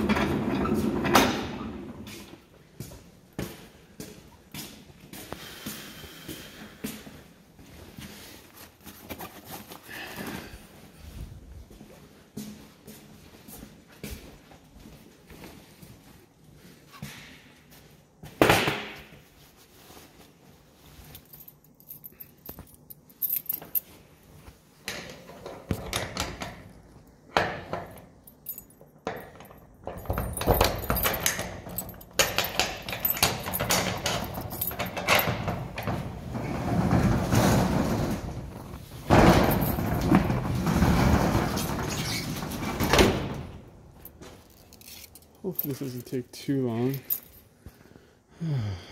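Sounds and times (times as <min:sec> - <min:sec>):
roll-up metal door rattling: 0:29.3 - 0:43.6.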